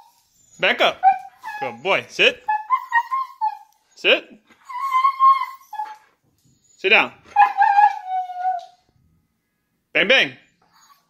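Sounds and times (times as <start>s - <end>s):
dog whining: 0.0s - 3.8s, 4.6s - 8.9s, 10.4s - 11.0s.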